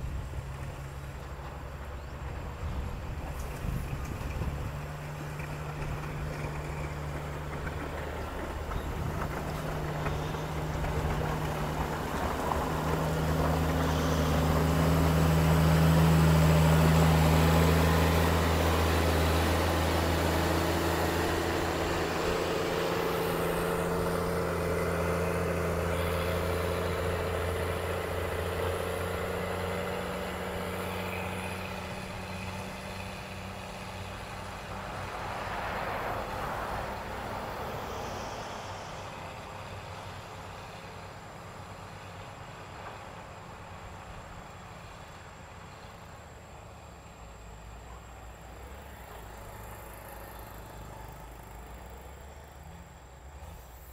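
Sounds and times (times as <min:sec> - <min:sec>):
diesel engine running under load: 0:00.0 - 0:53.9.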